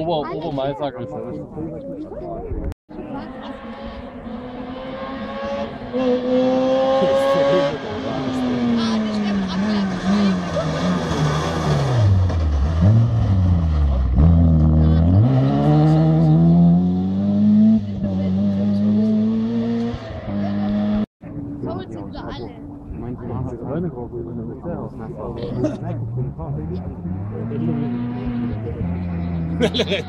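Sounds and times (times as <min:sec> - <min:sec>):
rally car engine revving: 0:02.9 - 0:21.6, 0:22.6 - 0:30.0.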